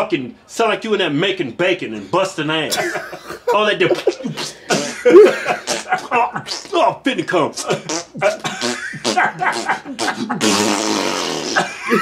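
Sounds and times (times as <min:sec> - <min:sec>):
man blowing a raspberry: 0:03.9 - 0:06.8, 0:07.5 - 0:12.0.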